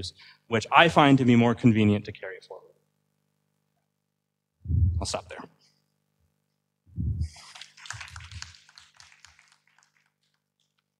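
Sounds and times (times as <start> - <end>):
small audience applauding: 7.3 - 10.9.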